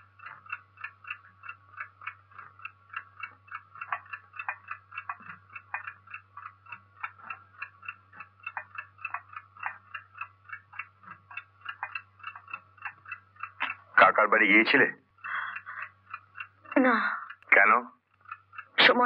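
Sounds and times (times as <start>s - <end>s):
clock ticking rapidly: 0.0s - 19.0s.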